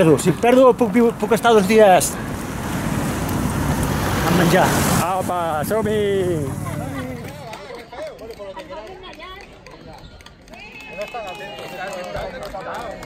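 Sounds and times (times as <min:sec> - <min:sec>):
murmur of overlapping voices: 0:04.2 - 0:10.4.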